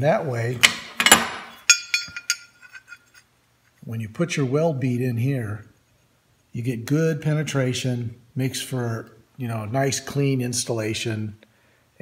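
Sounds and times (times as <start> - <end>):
steel plates clinking: 0.6 - 3.3.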